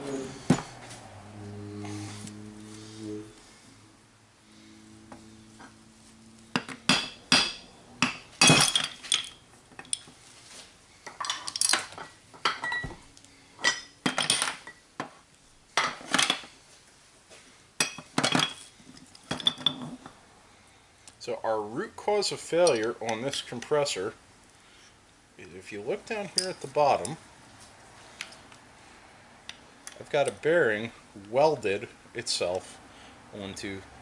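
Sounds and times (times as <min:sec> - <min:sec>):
metal parts clinking and clanking: 0:08.4 - 0:10.1, 0:11.0 - 0:12.9, 0:13.6 - 0:14.8, 0:17.8 - 0:20.1, 0:22.6 - 0:23.6.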